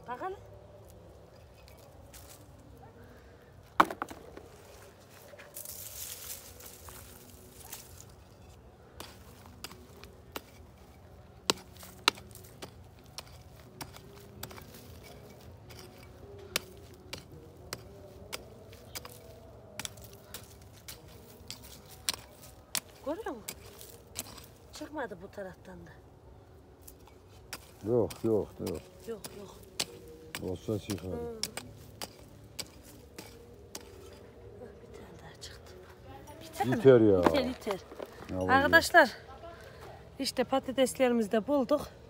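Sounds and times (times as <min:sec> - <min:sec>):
hand hoe striking dry soil: 0:08.9 - 0:24.8, 0:26.8 - 0:34.2.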